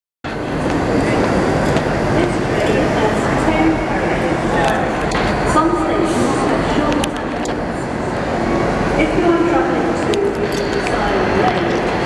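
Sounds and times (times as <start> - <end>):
echoing din of trains and people: 0.2 - 12.0.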